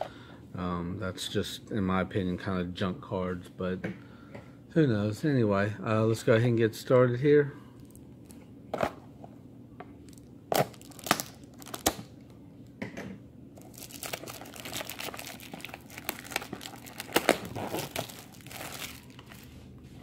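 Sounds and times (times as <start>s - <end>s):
plastic shrink wrap crinkling: 10.0s - 12.1s, 13.6s - 19.7s.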